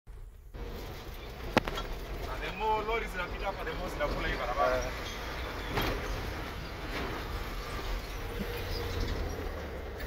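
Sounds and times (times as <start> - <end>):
diesel truck engine droning: 0.1 - 10.0.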